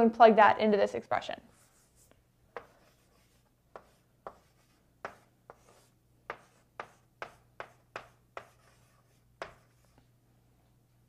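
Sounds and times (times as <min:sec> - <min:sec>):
chalk scraping on chalkboard: 0:01.5 - 0:10.0.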